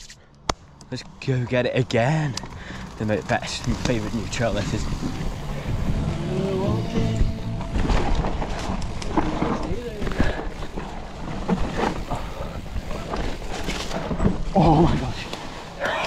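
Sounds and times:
bike tyres rolling over dirt: 0.9 - 15.8
bike knocking and rattling: 1.4 - 15.5
wind on microphone: 4.8 - 10.6.

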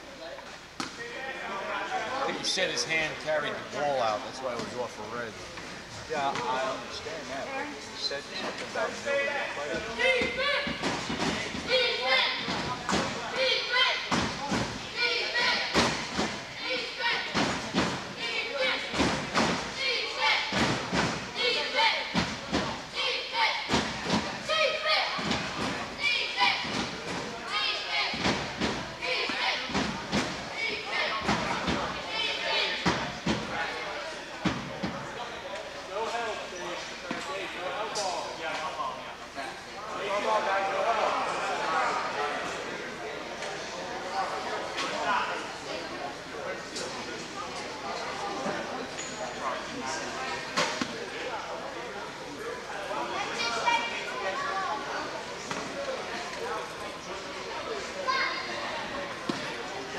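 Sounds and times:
people talking and calling out: 0.0 - 59.9.

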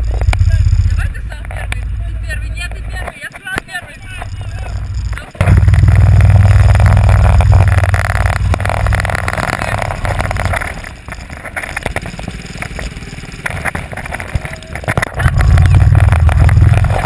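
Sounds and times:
go-kart engine running: 0.0 - 3.0, 3.8 - 17.0.

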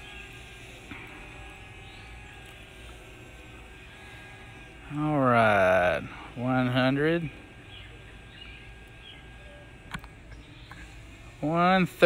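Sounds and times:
drone propellers whining: 0.0 - 12.0
small click: 9.9 - 10.8.

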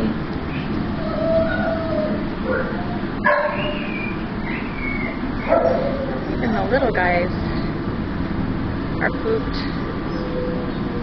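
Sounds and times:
steady background noise: 0.0 - 11.0
dogs barking and yipping: 0.5 - 6.7
dog whining: 1.0 - 6.6.

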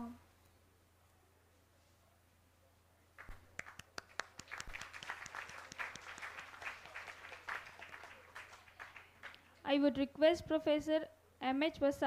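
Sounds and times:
audience applauding: 3.2 - 9.5.

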